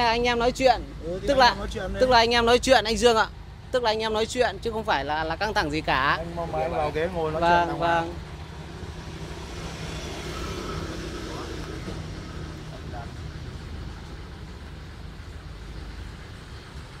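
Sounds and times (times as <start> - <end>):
street traffic hum: 0.0 - 17.0.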